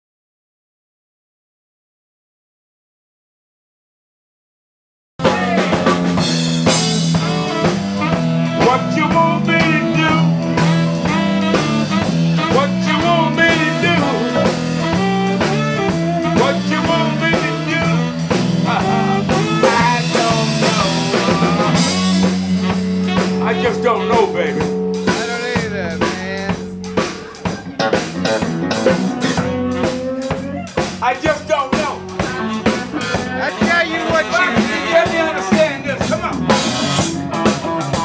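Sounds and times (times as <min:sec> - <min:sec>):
drum kit: 0:05.2 - 0:38.0
electric bass: 0:05.2 - 0:38.0
saxophone: 0:05.2 - 0:38.0.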